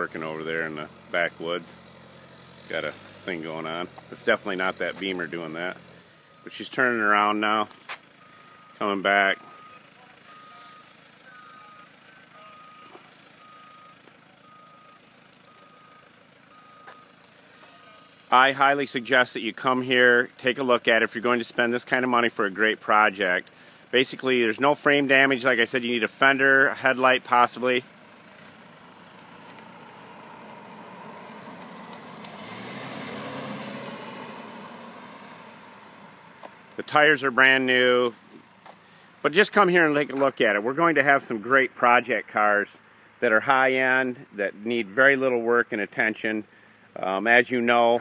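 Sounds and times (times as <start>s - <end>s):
outdoor background noise: 0.0s - 48.0s
distant backup alarm beeping: 5.4s - 7.4s, 8.1s - 18.2s, 23.4s - 35.9s
car driving past: 27.8s - 36.8s.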